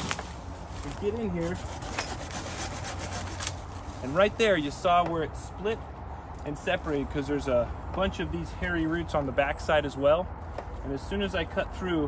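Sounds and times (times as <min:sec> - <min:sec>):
hand saw rasping through stem: 0:01.4 - 0:04.0.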